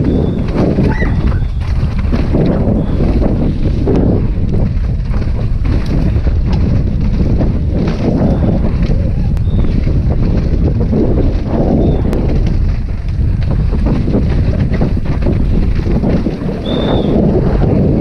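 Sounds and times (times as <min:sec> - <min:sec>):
mountain bike rumbling on dirt trail: 0:00.0 - 0:18.0
wind rushing over microphone: 0:00.0 - 0:18.0.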